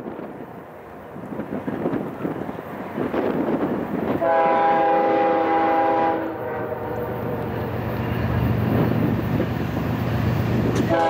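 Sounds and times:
train air horn: 0:04.2 - 0:07.4, 0:10.8 - 0:11.0.

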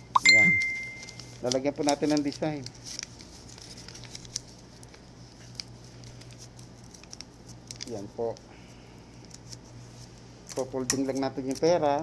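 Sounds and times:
decorations and wrapping rustling: 0:00.0 - 0:12.0
low steady hum: 0:00.0 - 0:12.0.

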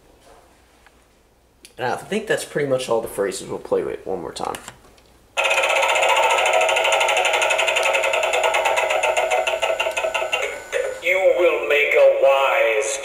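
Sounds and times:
spinning wheel toy ticking: 0:05.4 - 0:11.2
toy voice announcing: 0:10.7 - 0:13.0.

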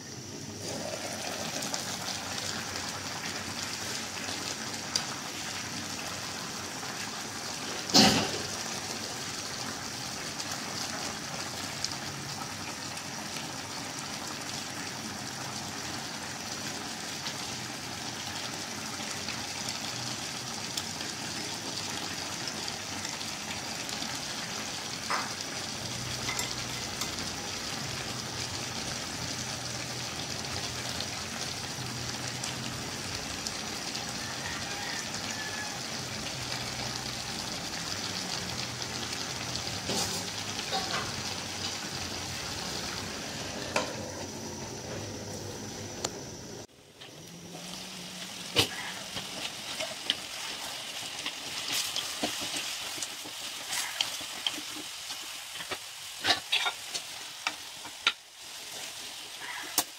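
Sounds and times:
food sizzling in a wok: 0:00.0 - 0:59.9.

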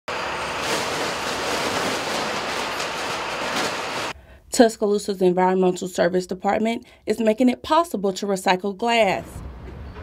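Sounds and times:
recyclables clattering out: 0:00.2 - 0:04.1.

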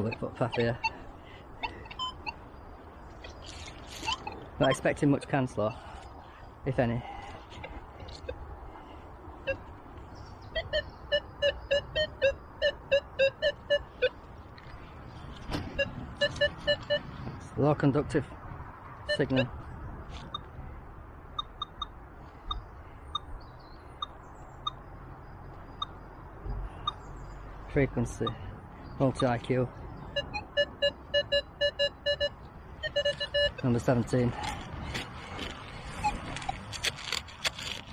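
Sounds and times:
metal detector low beeps: 0:00.0 - 0:02.4, 0:04.0 - 0:04.9, 0:09.4 - 0:09.7, 0:10.3 - 0:14.2, 0:15.5 - 0:17.2, 0:19.0 - 0:19.6, 0:20.3 - 0:20.5, 0:21.3 - 0:23.3, 0:29.9 - 0:34.6, 0:35.9 - 0:36.6.

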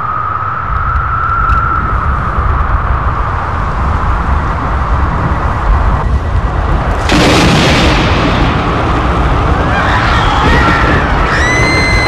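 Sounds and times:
heavy low rumble: 0:00.0 - 0:12.0.

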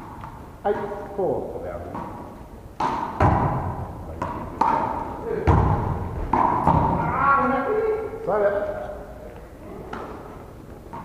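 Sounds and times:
ball smacking off wall and floor: 0:02.8 - 0:07.2.

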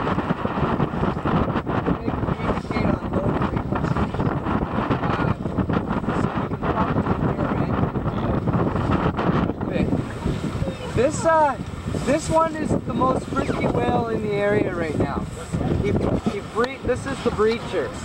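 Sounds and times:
boat motor running: 0:00.0 - 0:18.0
sea wash: 0:00.0 - 0:18.0
wind buffeting microphone: 0:00.0 - 0:18.0.

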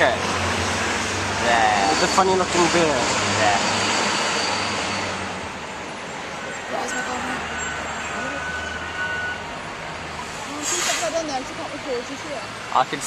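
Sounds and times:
bus engine humming: 0:00.0 - 0:13.0
road traffic: 0:00.0 - 0:13.0.

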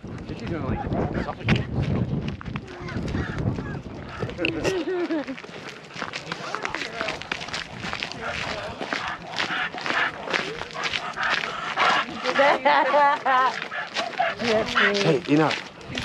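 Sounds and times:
footsteps on paved path: 0:00.0 - 0:16.0.

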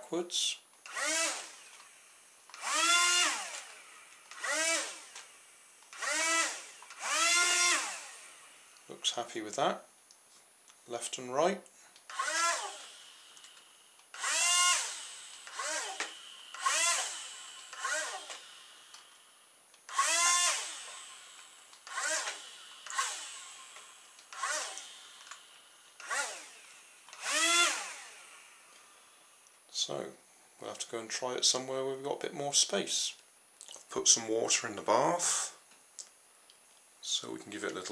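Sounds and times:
small electric motors whirring: 0:00.8 - 0:08.9, 0:12.0 - 0:29.5.

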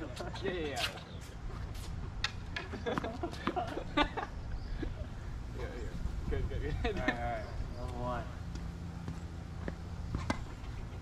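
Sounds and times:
tennis ball bouncing on hard court: 0:02.2 - 0:03.8, 0:08.5 - 0:10.8.

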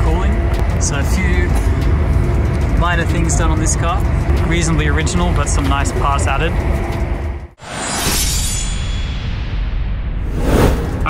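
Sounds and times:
rushing whoosh: 0:07.6 - 0:11.0.

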